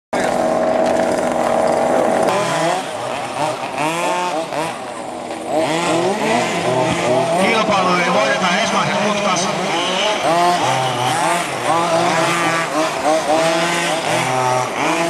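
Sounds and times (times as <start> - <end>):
model car motors whining: 0.2 - 15.0.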